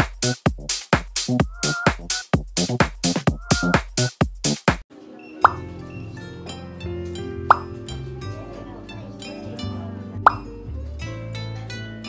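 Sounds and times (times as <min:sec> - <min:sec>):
plucked-string background music: 0:04.9 - 0:12.0.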